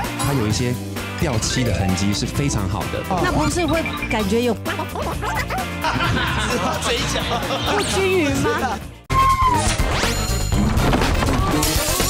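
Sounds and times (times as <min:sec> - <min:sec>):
tv theme music: 0:00.0 - 0:09.1.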